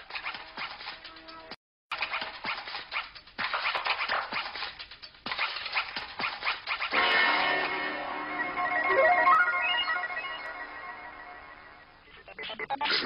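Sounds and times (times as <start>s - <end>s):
scratchy synthesizer pulses: 7.0s - 13.0s
sustained synthesizer chord: 7.2s - 11.9s
rising synth sweep: 8.0s - 11.9s.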